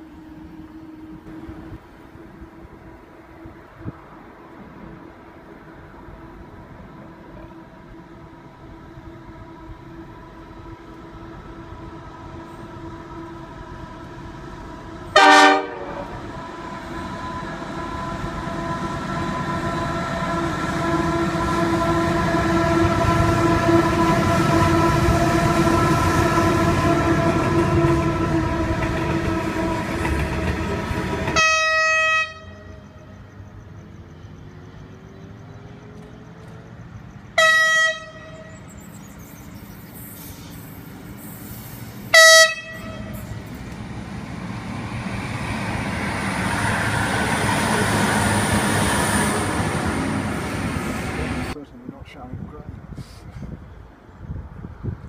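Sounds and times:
train wheel noise: 0:00.0 - 0:51.7
locomotive engine drone: 0:00.0 - 0:52.0
train horn blast: 0:15.0 - 0:33.1, 0:37.4 - 0:38.7, 0:42.1 - 0:43.5
train horn toots: 0:15.0 - 0:33.1, 0:37.3 - 0:38.7, 0:42.1 - 0:43.5.

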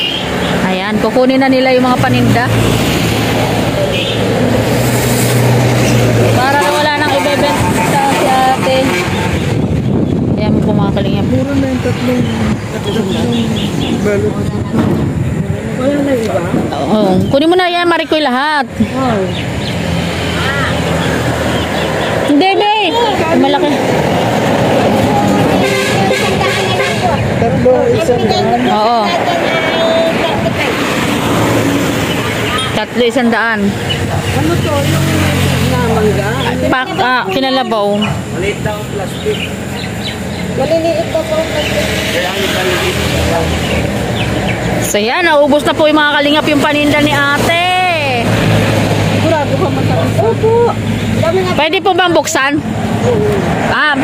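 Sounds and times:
road traffic noise: 0:00.0 - 0:54.0.

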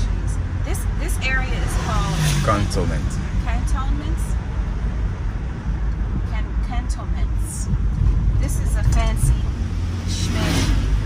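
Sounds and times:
indistinct voices: 0:00.0 - 0:04.4, 0:08.4 - 0:10.9
van engine and tyres rumbling: 0:00.0 - 0:11.0.

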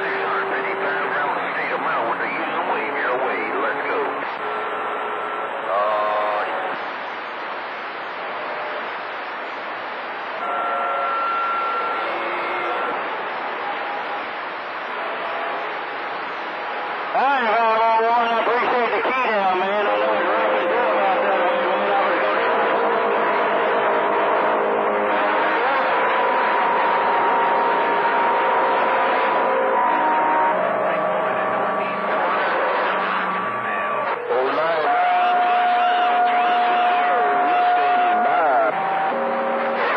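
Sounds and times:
garbled overlapping radio voices: 0:00.0 - 0:39.9
radio static: 0:00.0 - 0:39.9.

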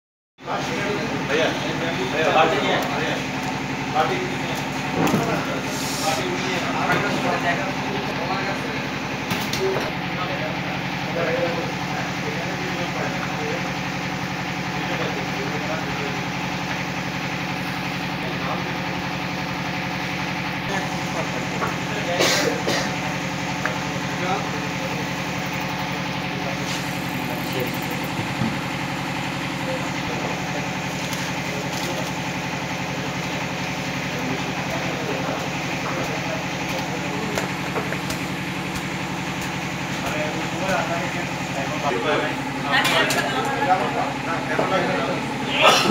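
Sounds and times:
engine running steadily: 0:00.4 - 0:45.9
machine drone with low hum: 0:00.4 - 0:45.9
faint voices: 0:20.5 - 0:45.9.

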